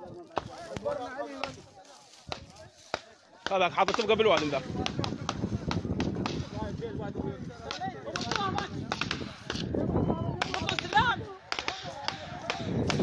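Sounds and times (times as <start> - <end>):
gunfire cracks: 2.3 - 6.6, 7.6 - 9.7, 10.4 - 13.0.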